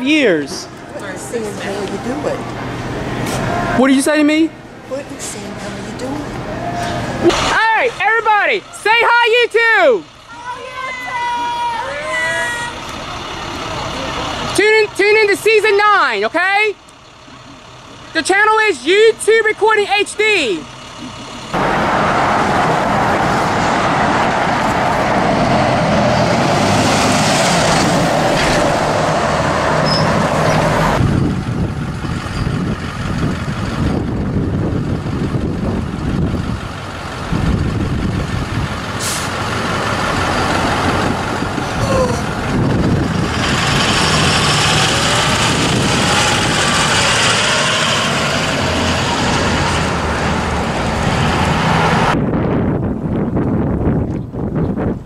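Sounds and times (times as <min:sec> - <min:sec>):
bus engines and tyre noise: 0:00.0 - 0:55.0
air brakes hissing: 0:39.0 - 0:39.4.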